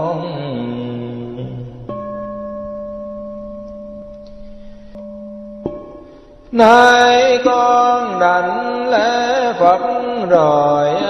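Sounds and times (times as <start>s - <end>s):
person chanting: 0.0s - 2.2s, 6.5s - 11.0s
instrument holding steady chord: 1.9s - 8.7s.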